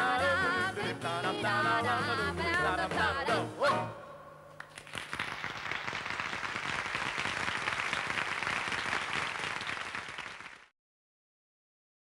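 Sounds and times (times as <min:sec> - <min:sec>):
audience applauding: 0:04.6 - 0:10.7.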